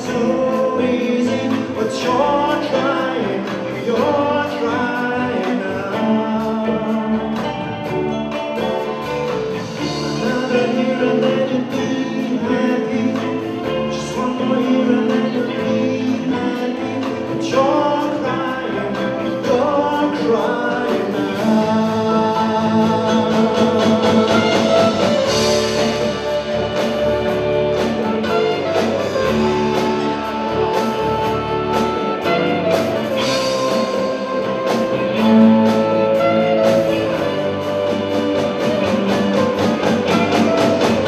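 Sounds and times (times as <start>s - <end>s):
man singing into microphone: 0.0s - 7.6s, 9.6s - 25.6s
drums with steady beat: 0.0s - 41.0s
electric guitar: 0.0s - 41.0s.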